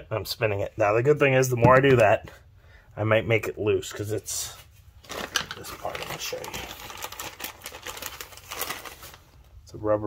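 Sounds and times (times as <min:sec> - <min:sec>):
plastic bag crinkling: 0:05.0 - 0:09.5.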